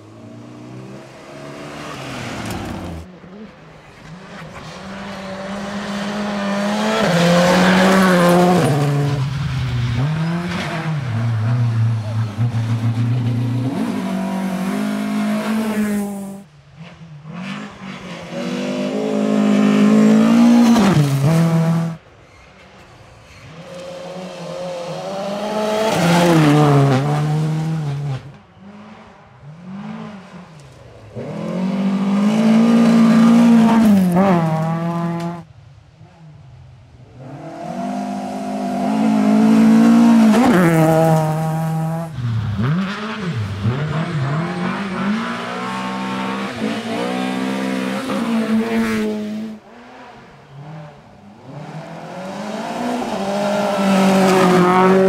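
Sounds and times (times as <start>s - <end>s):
rally car engines revving past: 0.0s - 22.0s, 23.4s - 35.5s, 37.0s - 55.0s.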